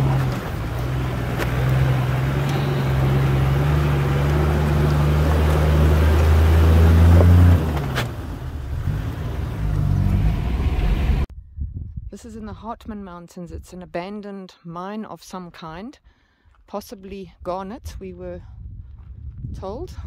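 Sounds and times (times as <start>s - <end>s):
vehicle engine pulling under load: 0.0s - 11.3s.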